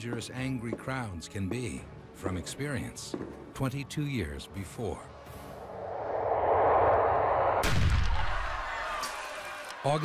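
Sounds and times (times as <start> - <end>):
rush of noise: 5.6 - 8.5.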